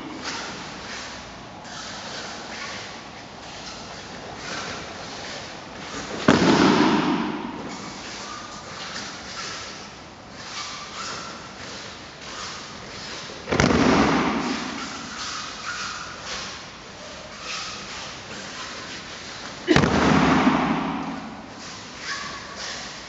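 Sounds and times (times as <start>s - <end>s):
body thudding on mats: 13.5s - 14.7s, 19.7s - 21.5s.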